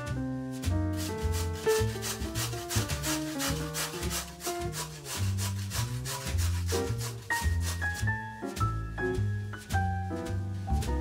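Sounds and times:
background music: 0.0 - 11.0
potato grated on metal grater: 0.6 - 8.1.

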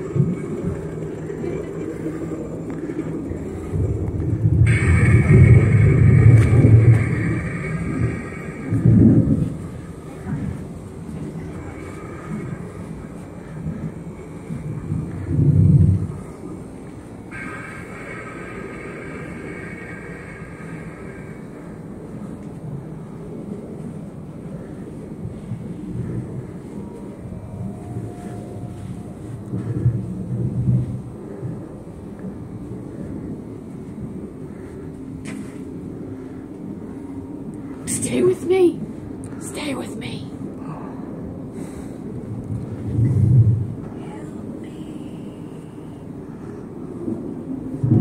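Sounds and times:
low continuous rumble: 0.0 - 48.0
faint higher tones: 25.4 - 30.2.

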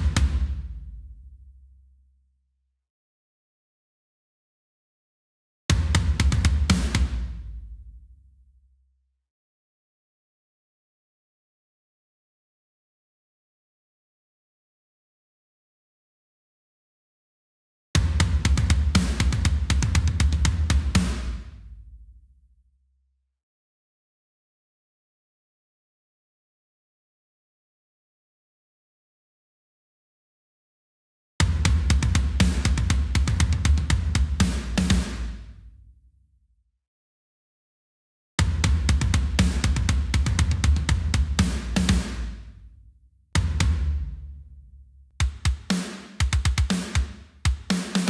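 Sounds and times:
metal drum fill with cymbals: 18.0 - 21.4, 31.4 - 35.4, 38.4 - 42.4, 45.2 - 48.0.

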